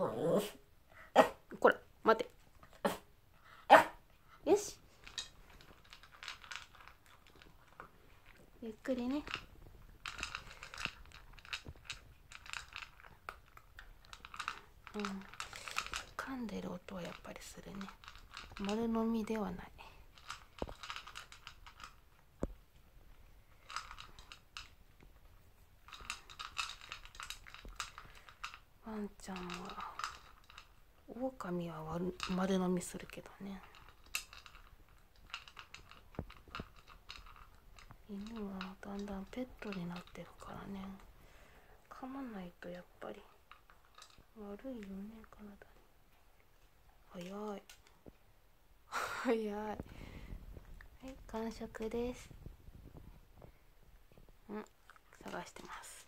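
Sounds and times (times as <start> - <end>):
small dog barking: 0.3 - 1.4, 3.7 - 4.0
dog chewing food: 4.9 - 8.6
dog eating from bowl clicking: 4.9 - 22.1, 23.5 - 24.8, 25.8 - 40.7, 42.6 - 44.3.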